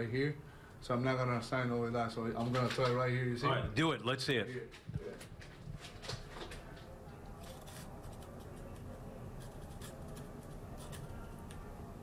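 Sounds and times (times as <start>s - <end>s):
marker scratching on concrete: 7.4s - 11.6s.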